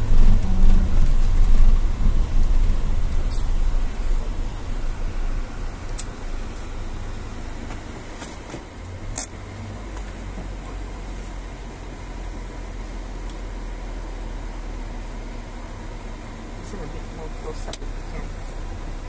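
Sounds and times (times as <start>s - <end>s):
car engine and cabin rumble: 0.0s - 19.0s.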